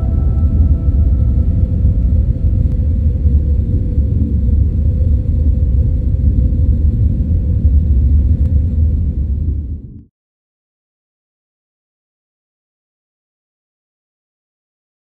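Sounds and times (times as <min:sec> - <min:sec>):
faint held tone: 0:00.0 - 0:04.4
ambient music: 0:00.0 - 0:05.0
deep rumble: 0:00.0 - 0:10.1.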